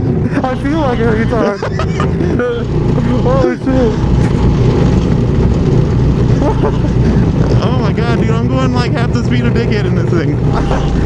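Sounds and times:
go-kart engine running: 0:00.0 - 0:11.0.

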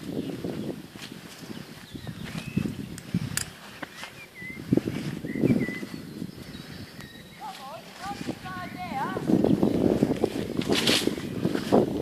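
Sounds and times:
footfalls on grass: 0:00.0 - 0:06.0, 0:07.4 - 0:12.0
bird chirps: 0:01.4 - 0:03.1, 0:03.7 - 0:08.2.

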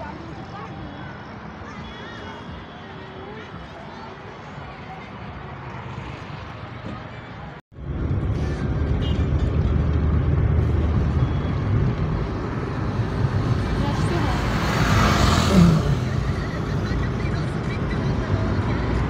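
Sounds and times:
car engine and road rumble: 0:04.4 - 0:19.0.

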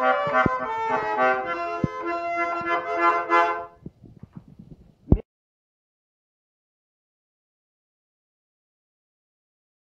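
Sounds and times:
accordion chord: 0:00.0 - 0:03.8
faint clicks and knocks: 0:03.8 - 0:05.2.

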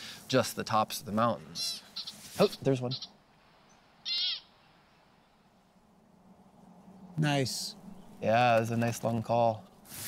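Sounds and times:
pika squeaky call: 0:01.5 - 0:04.6.

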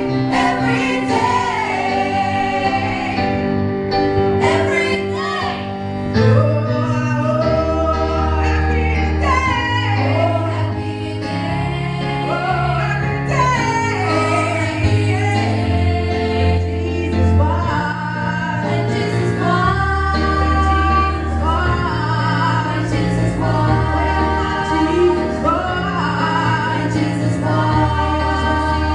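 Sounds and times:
female backing singers: 0:00.0 - 0:03.5, 0:04.4 - 0:28.9.

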